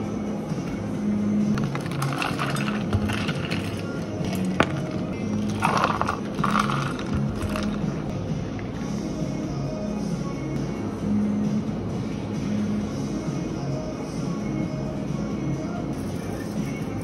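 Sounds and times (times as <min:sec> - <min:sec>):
background music: 0:00.0 - 0:17.0
ice cubes rattling into plastic cups: 0:01.6 - 0:07.8.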